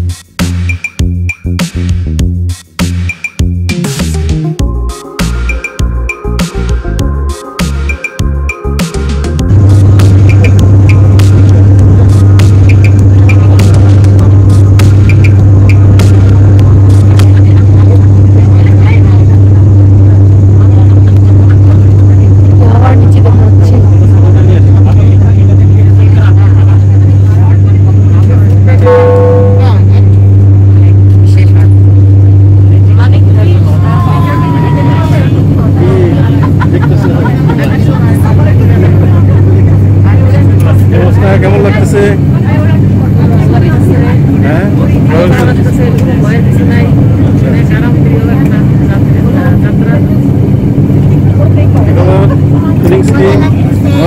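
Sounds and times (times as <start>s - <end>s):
propeller engines droning: 4.6s - 54.0s
voices: 12.6s - 31.8s, 32.6s - 54.0s
brief ringing tone: 28.8s - 30.0s.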